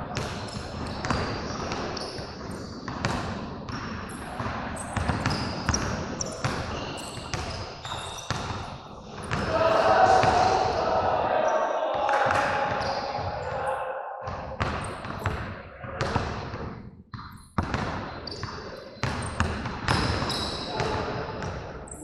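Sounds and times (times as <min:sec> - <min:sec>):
voices shouting: 0:09.4 - 0:14.3.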